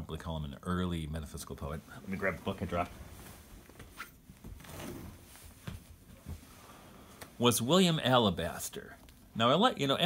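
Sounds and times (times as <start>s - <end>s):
faint rustling: 1.8s - 7.5s.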